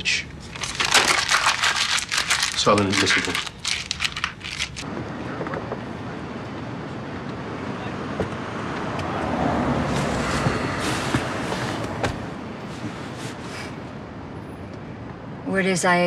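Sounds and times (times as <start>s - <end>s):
street traffic rushing: 4.8s - 16.0s
vehicle passing by: 6.7s - 12.5s.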